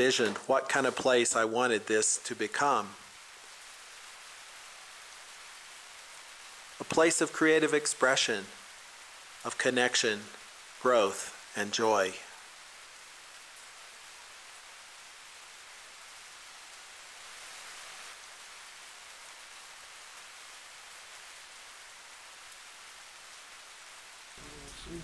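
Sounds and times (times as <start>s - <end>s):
faint outdoor hiss: 0.0s - 25.0s.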